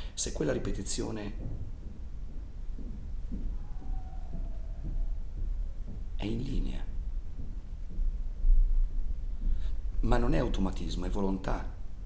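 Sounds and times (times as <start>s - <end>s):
low rumble: 0.5s - 10.5s.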